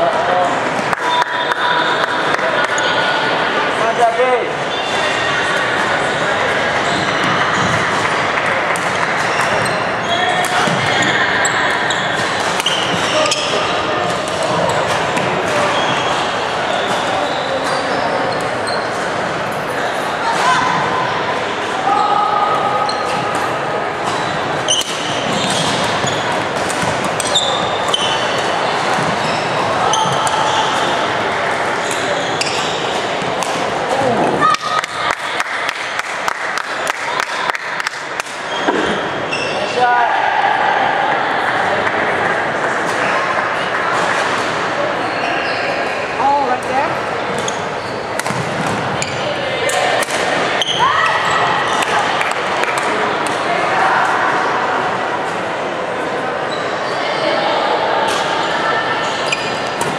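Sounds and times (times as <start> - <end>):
chatter of many voices: 0.0 - 59.9.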